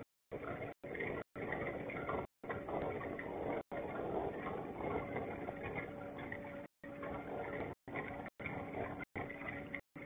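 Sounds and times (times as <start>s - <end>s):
faint steady hum: 0.0s - 10.0s
small boat on water: 0.0s - 10.0s.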